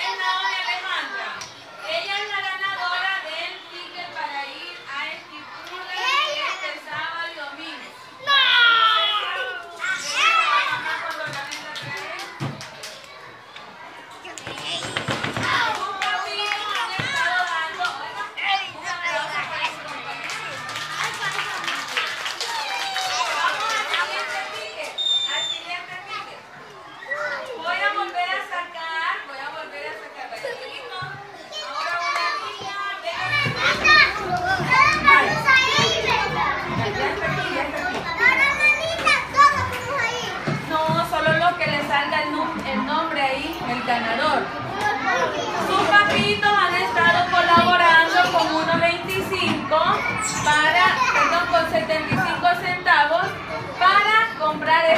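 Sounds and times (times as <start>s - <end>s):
young children talking: 0.0s - 54.9s.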